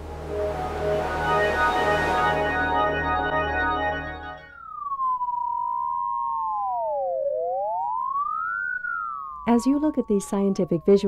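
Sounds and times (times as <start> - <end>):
electronic tones gliding in pitch: 0.0 - 11.0.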